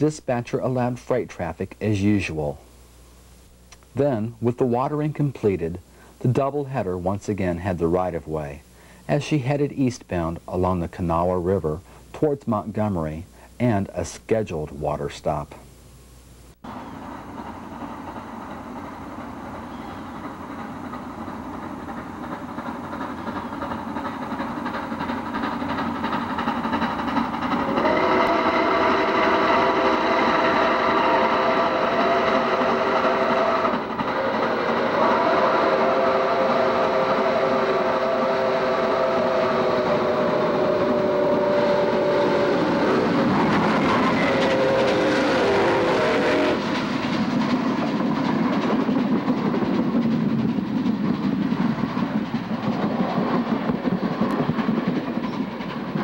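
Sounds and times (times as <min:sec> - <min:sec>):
rumble of train: 0:16.6 - 0:56.0
train wheels clickety-clack: 0:16.8 - 0:56.0
steam locomotive chime whistle: 0:19.5 - 0:21.1, 0:27.6 - 0:46.8.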